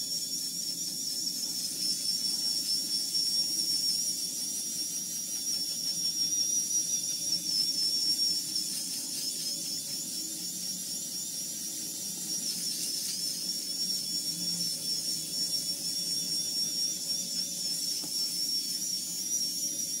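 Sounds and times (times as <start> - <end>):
electric shaver whining: 0.0 - 20.0.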